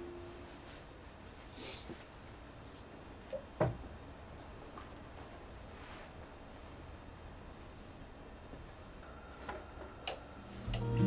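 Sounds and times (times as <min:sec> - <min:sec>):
guitar music: 0:10.6 - 0:11.0.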